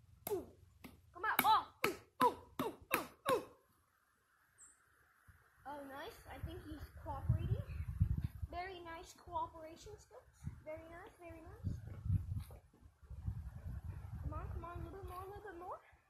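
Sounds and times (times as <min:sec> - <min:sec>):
boy speaking: 0:05.7 - 0:07.7.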